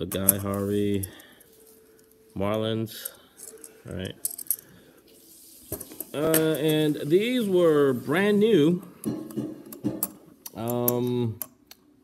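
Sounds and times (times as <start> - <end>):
coins clinking: 0.0 - 7.2.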